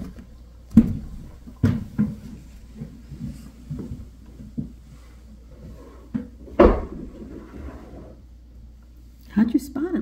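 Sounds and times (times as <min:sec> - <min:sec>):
louder thump: 0:06.6 - 0:07.1.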